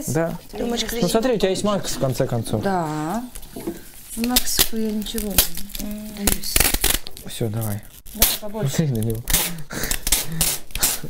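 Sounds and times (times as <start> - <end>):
rustling crinkling noise: 0.0 - 10.9.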